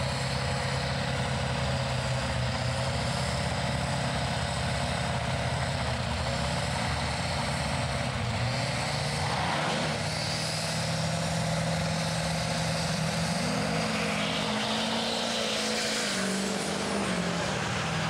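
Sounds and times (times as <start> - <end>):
diesel truck engine revving: 0.0 - 18.0.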